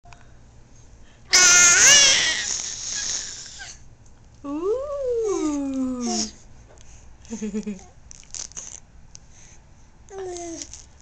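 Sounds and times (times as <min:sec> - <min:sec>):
baby squealing: 0:01.3 - 0:03.8.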